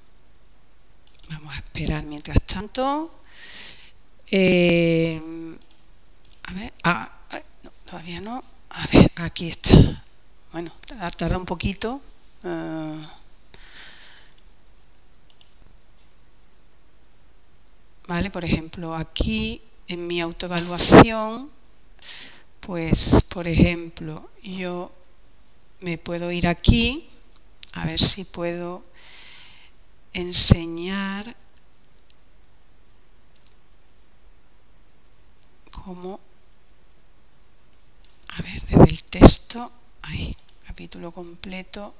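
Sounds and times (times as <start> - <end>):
low microphone hiss: 0.0 - 41.9
computer mouse clicks: 1.0 - 1.4, 5.6 - 6.4, 14.3 - 15.7, 32.9 - 33.6, 40.3 - 40.6.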